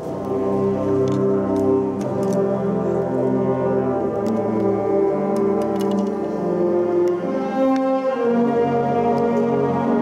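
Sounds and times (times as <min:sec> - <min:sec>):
wind band playing slow chords: 0:00.0 - 0:10.0.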